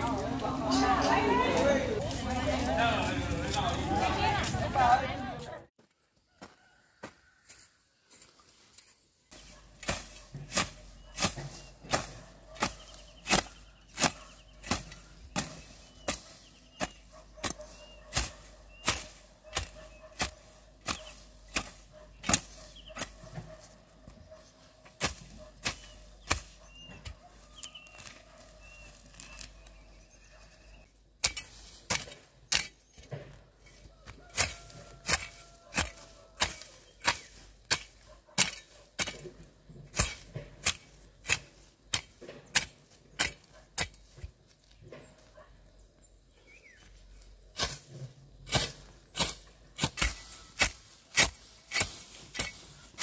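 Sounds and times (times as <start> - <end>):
hoe chopping into soil: 9.4 - 23.7, 24.9 - 30.0, 31.2 - 45.3, 47.5 - 53.0.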